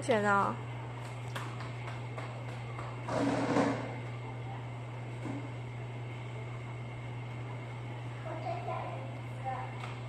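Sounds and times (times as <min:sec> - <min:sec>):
stool scraping on hard floor: 0:03.1 - 0:03.9.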